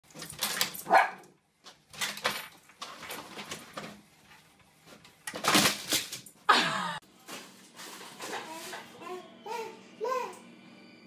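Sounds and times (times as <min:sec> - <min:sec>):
small dog barking: 0:00.9 - 0:01.2.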